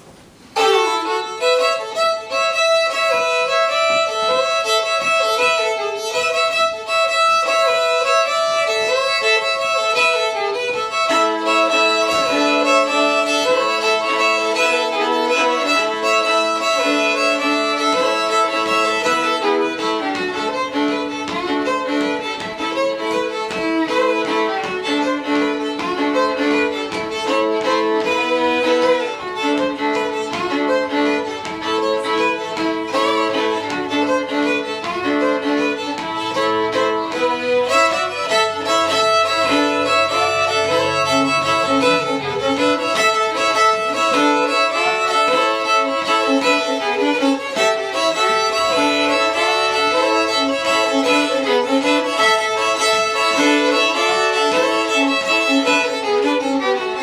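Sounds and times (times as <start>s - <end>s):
two fiddles playing: 0.0s - 57.0s.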